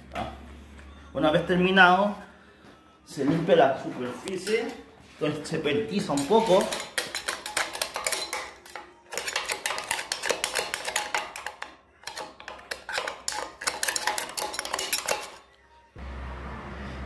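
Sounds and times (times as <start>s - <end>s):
hand tool scraping metal: 4.2s - 15.4s.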